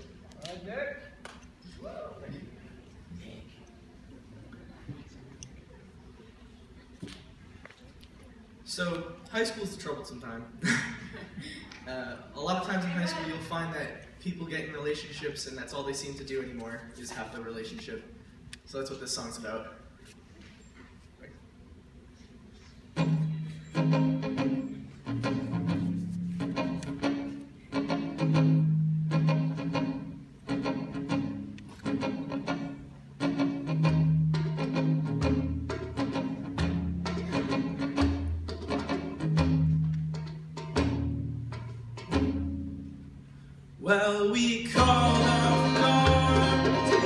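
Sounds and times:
acoustic guitar chords: 23.0s - 47.0s.

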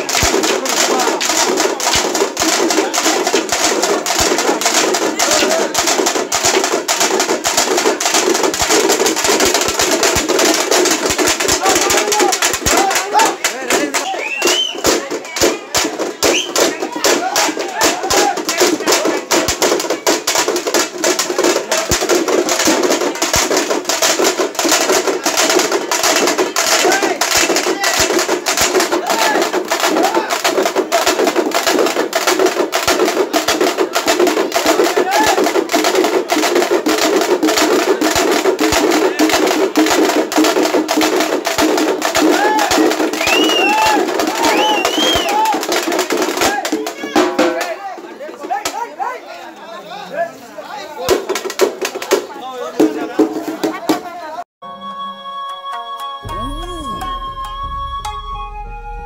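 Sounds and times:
frame drums beaten with sticks: 0.0s - 48.8s
crowd voices: 0.0s - 54.5s, 56.2s - 59.0s.

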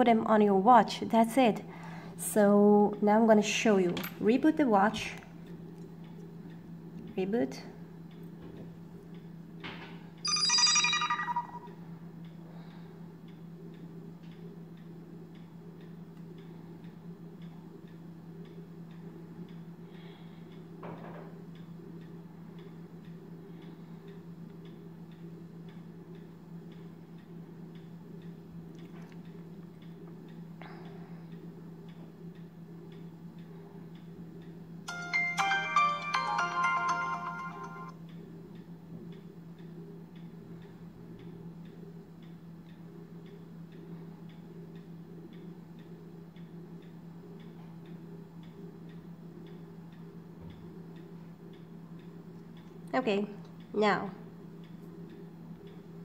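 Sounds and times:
steady low hum: 0.0s - 56.0s
smartwatch boot-up jingle: 10.3s - 11.8s, 34.9s - 38.0s
faint regular ticking: 13.2s - 20.8s, 21.5s - 34.9s, 36.6s - 50.2s, 50.8s - 53.8s.

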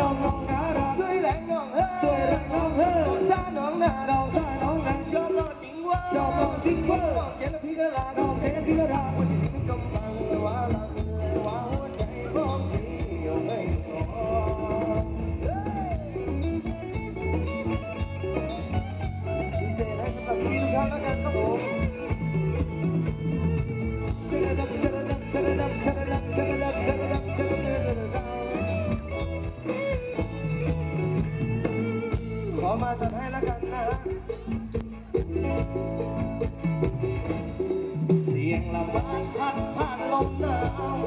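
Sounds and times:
live band playing dance music: 0.0s - 41.0s.

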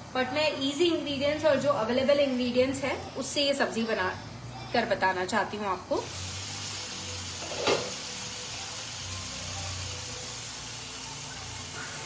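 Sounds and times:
vegetables sizzling in a pan: 5.4s - 12.0s.

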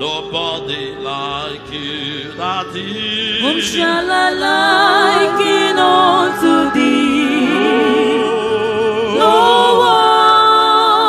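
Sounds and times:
gospel chorus singing: 0.0s - 11.0s
held notes of musical accompaniment: 0.0s - 11.0s.

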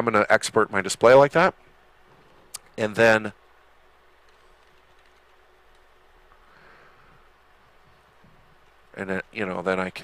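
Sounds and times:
keyboard keystrokes: 4.3s - 5.9s.

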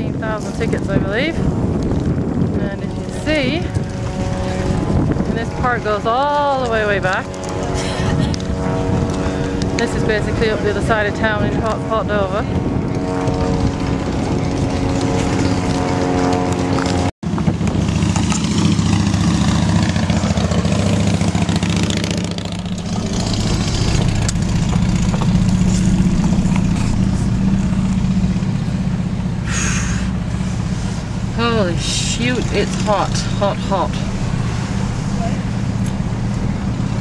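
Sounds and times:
car engine and road noise: 0.0s - 37.0s
steady humming tone: 0.0s - 37.0s.

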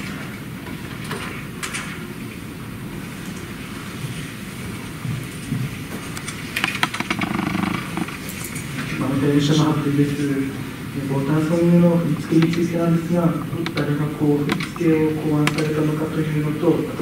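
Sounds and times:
clicks and rustling: 6.0s - 8.7s, 11.3s - 16.1s.

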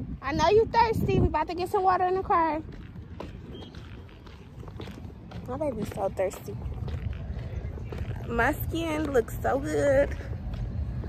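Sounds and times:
wind rumble: 0.0s - 11.0s.

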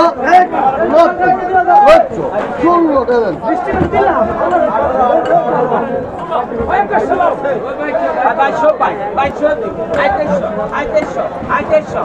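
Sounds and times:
busy market chatter: 0.0s - 12.0s.

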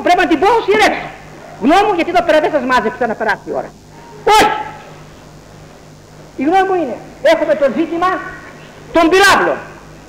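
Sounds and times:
low hum and hiss: 0.0s - 10.0s
man shouting: 4.2s - 4.8s.

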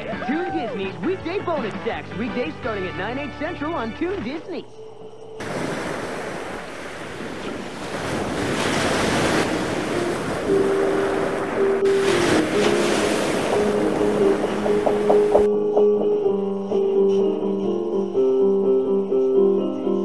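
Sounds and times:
wind noise: 5.4s - 15.9s
ocean surf: 5.4s - 16.2s
sustained music notes: 9.6s - 20.0s.

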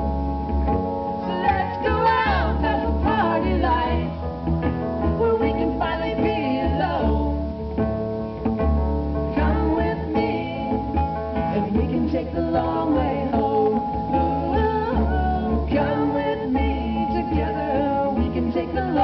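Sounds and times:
sustained keyboard chords: 0.0s - 19.0s.

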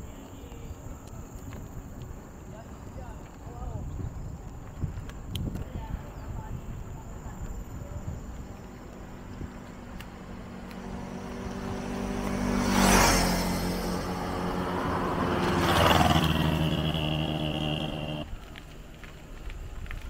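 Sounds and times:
vehicles driving past: 8.1s - 18.4s
thin high whine: 15.0s - 18.3s.

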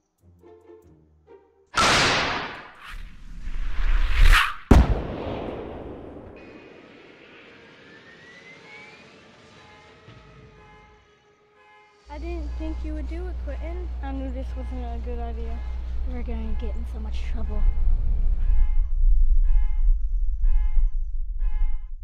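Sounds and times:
soft string music: 0.0s - 1.8s, 10.0s - 17.8s
sharp bang: 1.8s - 3.0s, 4.2s - 7.9s
rocket launch blast: 1.8s - 7.9s
whoosh: 1.8s - 8.7s.

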